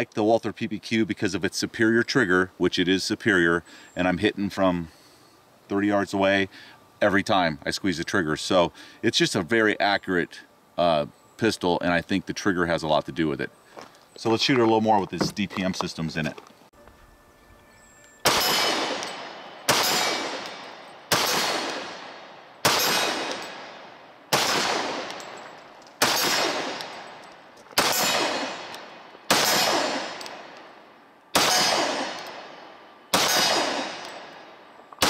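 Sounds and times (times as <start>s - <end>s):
pistol gunshots with echo: 18.2s - 34.6s.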